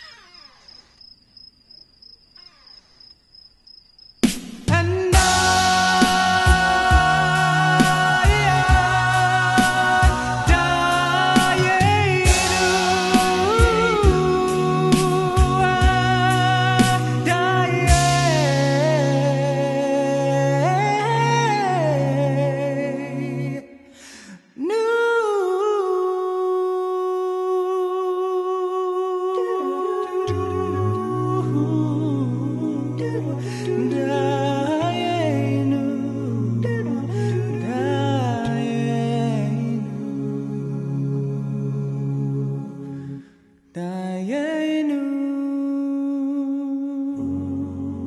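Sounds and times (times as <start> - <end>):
deep bass voices: 4.7 - 23.6, 30.1 - 43.2
voices humming held note: 5.1 - 23.6
voice holding long note: 28.7 - 43.2.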